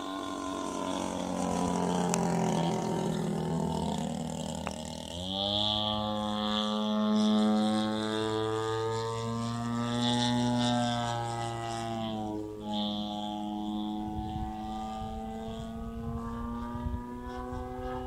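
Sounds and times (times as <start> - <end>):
model airplane engine drone: 0.0 - 18.0.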